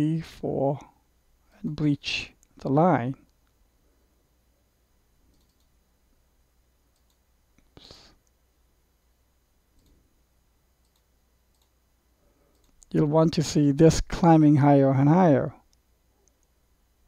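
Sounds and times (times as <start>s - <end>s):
faint computer mouse clicks: 5.3s - 5.8s, 6.9s - 8.4s, 9.8s - 10.0s, 10.8s - 11.8s, 12.5s - 12.9s.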